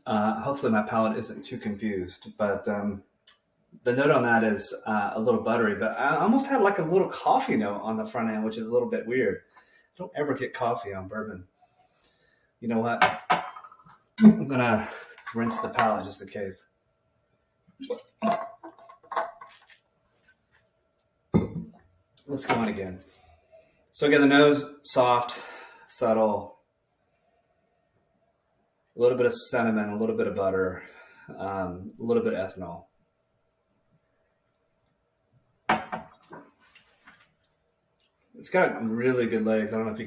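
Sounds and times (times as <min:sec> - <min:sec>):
glass knocking on stone counter: 0:13.0 - 0:13.9, 0:21.4 - 0:21.8, 0:35.7 - 0:36.2.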